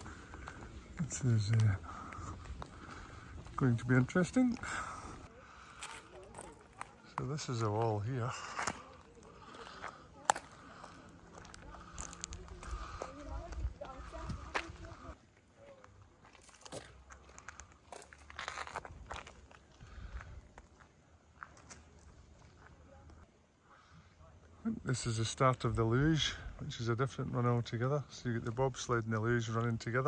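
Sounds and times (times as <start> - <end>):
faint voices talking: 0.0 - 16.4
footsteps on concrete grit: 0.0 - 22.9.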